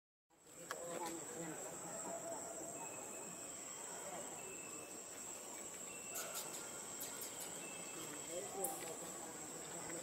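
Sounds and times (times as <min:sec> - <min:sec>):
insects droning: 0:00.3 - 0:10.0
faint whistled tones: 0:05.8 - 0:08.4.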